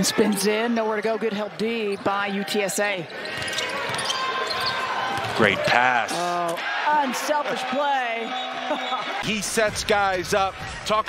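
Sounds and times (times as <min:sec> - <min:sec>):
arena crowd murmur: 0:00.0 - 0:11.0.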